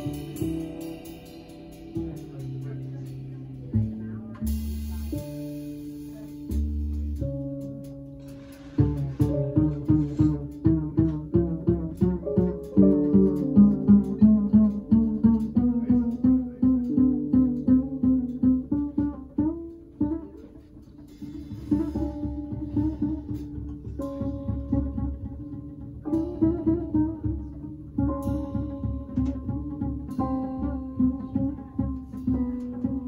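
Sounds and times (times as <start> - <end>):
double bass plucked pizzicato: 0.0 - 33.0.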